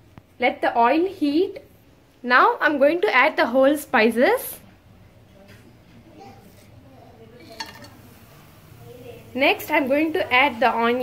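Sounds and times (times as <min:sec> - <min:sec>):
faint background voice: 0:04.6 - 0:09.3
steel bowl clinking on metal: 0:07.4 - 0:08.0.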